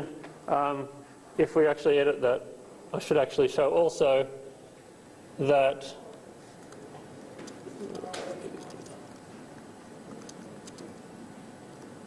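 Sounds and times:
lecture hall room noise: 0.0 - 12.0
faint murmur of voices: 5.8 - 9.5.

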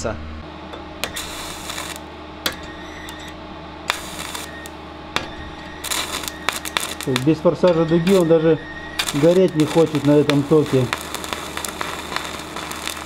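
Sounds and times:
steady hum: 0.0 - 13.0
welding arc crackling: 0.8 - 13.0.

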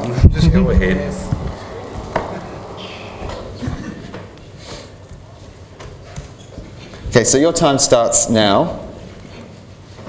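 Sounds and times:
faint room noise: 0.0 - 10.0.

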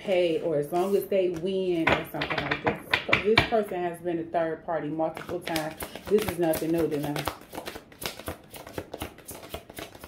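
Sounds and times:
cards being shuffled: 5.2 - 10.0.

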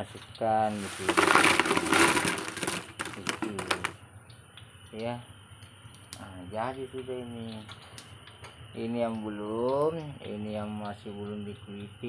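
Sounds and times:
chips rattling into plastic bucket: 0.7 - 4.0
chips dropping sharp clicks: 0.8 - 4.0.

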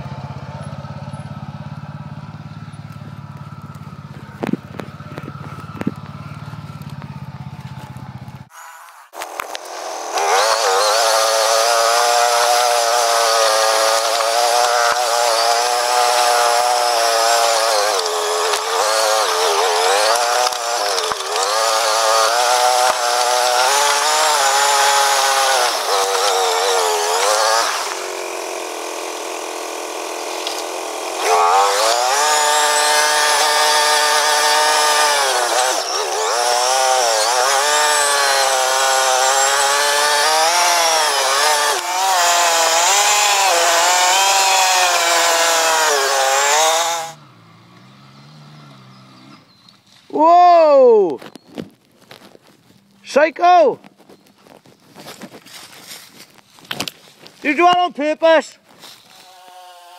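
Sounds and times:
quad bike engine revving: 0.0 - 8.5, 10.1 - 49.5.

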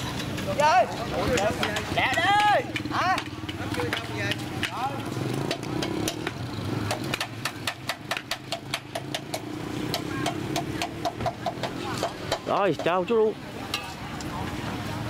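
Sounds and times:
voices: 0.0 - 7.8, 9.0 - 15.0
motorbike engine running: 1.1 - 12.6.

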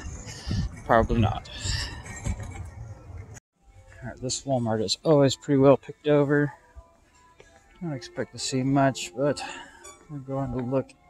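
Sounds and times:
low outdoor rumble: 0.0 - 4.2
indoor store ambience: 0.0 - 11.0.

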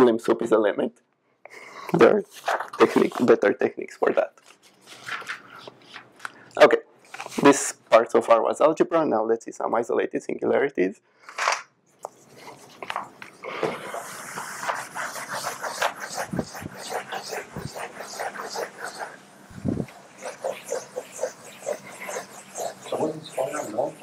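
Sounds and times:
eraser scrubbing a chalkboard: 13.7 - 24.0.

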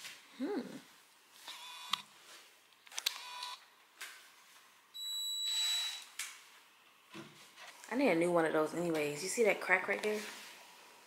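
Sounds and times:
cordless drill whining: 5.0 - 6.0.

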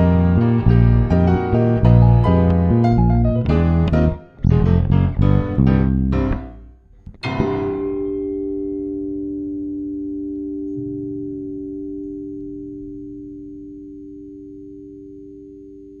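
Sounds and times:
keyboard chord ringing out: 0.0 - 15.5.

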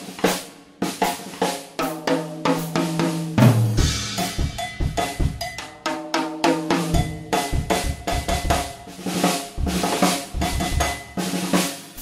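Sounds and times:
drum kit strikes: 0.0 - 12.0
cowbell hits: 4.2 - 5.9, 6.9 - 8.6.

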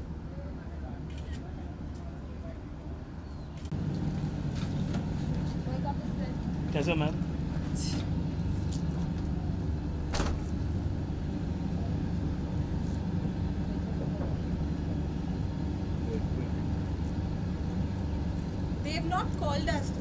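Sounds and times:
low engine rumble: 0.0 - 20.0.

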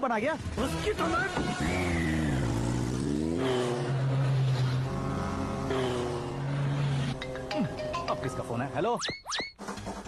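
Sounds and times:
vehicle engine revving: 0.4 - 7.5.

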